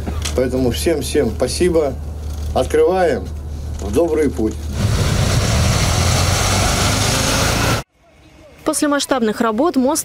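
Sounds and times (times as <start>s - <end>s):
road noise: 0.0s - 9.7s.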